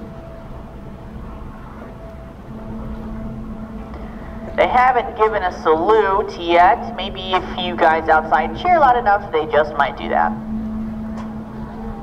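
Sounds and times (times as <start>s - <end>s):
ship diesel engines droning: 0.0s - 12.0s
steady hum: 0.0s - 12.0s.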